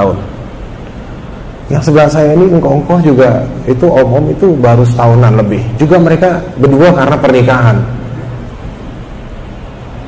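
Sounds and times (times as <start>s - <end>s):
low constant hum: 0.0s - 10.0s
steady hiss: 0.0s - 10.0s.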